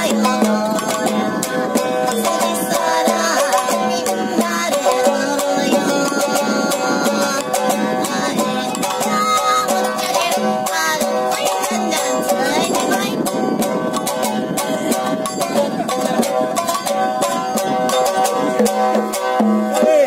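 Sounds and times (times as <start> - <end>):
plucked string instrument tune: 0.0 - 20.0.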